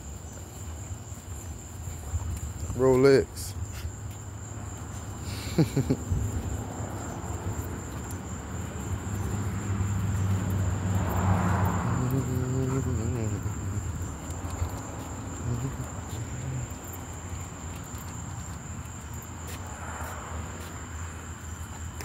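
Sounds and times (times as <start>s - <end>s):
night insects trilling: 0.0s - 22.0s.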